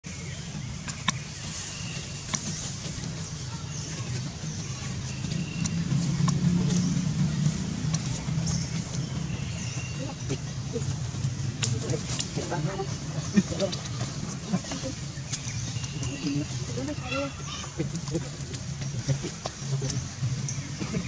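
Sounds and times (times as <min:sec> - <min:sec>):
motor vehicle rumble: 0:00.0 - 0:21.0.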